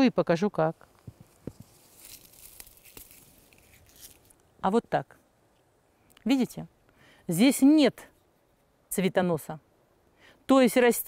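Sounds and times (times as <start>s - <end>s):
rustling and crackling of leaves: 0.6s - 4.5s.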